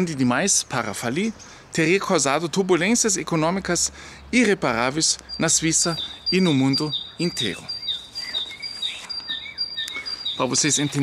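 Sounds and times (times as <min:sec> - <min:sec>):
songbirds chirping: 0:00.0 - 0:11.0.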